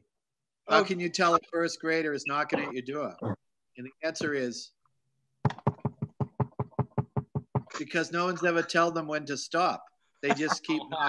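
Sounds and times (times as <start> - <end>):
hand knocking on hard surface: 5.5 - 7.7.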